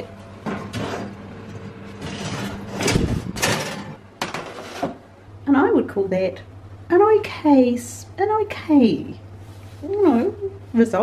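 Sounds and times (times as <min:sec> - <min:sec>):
steady low hum: 0:00.0 - 0:11.0
metal baking tray scraping on rack: 0:00.4 - 0:05.0
baking tray clattering on stovetop: 0:02.0 - 0:05.0.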